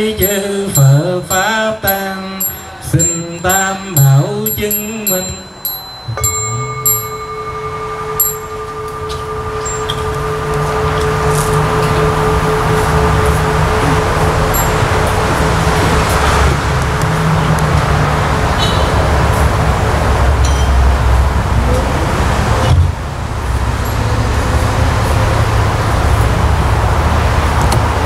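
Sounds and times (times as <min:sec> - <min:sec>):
bell ringing: 0:00.0 - 0:16.6, 0:20.4 - 0:21.4
low rumbling noise: 0:00.0 - 0:28.0.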